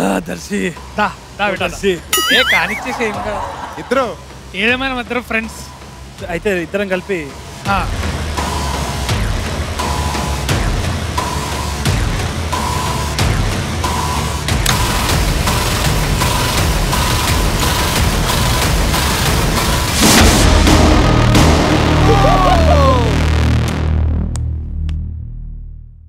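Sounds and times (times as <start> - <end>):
repeating high beep: 2.2 - 2.8.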